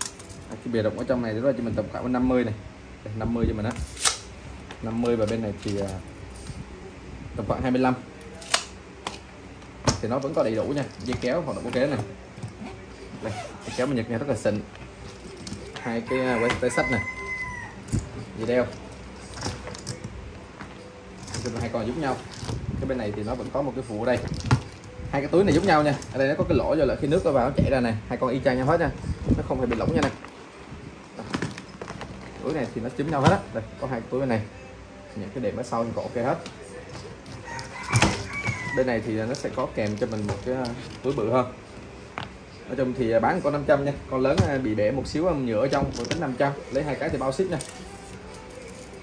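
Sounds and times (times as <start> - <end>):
leather bags being handled: 0.0 - 1.1, 7.6 - 26.5, 28.5 - 34.0, 35.2 - 42.8, 44.2 - 49.0.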